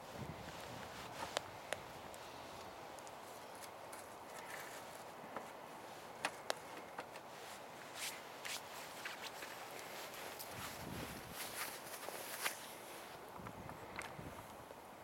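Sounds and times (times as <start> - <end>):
faint steady hiss: 0.0 - 15.0
soft scuffs: 7.2 - 13.2.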